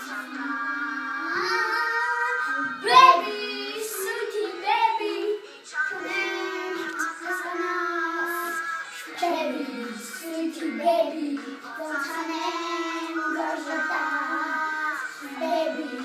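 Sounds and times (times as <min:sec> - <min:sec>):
children singing together: 0:00.0 - 0:16.0.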